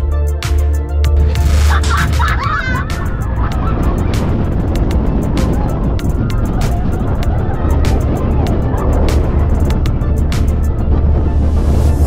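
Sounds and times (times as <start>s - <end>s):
music playing: 0.0s - 12.0s
roller coaster train rumbling: 1.2s - 12.0s
wind rushing over microphone: 1.2s - 12.0s.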